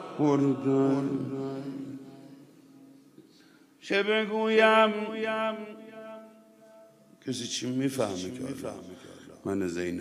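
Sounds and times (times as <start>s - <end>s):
man chanting: 0.0s - 2.4s, 7.2s - 10.0s.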